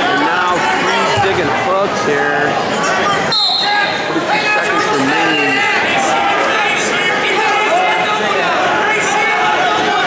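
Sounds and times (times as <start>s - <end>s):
crowd and coaches shouting: 0.0s - 10.0s.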